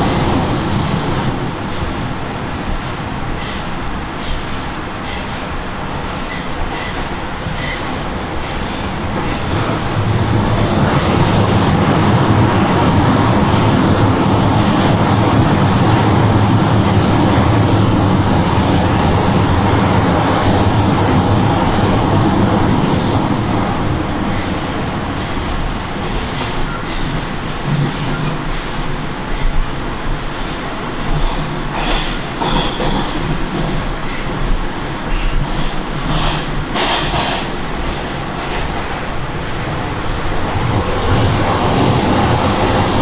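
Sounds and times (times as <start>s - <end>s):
metro train wheels rumbling: 0.0s - 43.0s.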